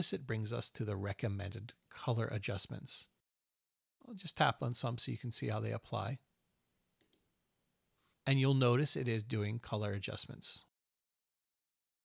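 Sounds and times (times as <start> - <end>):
computer mouse clicks: 7.0 - 7.3.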